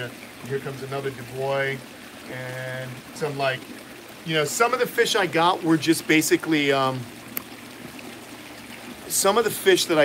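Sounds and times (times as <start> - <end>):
water trickling: 0.0 - 10.0.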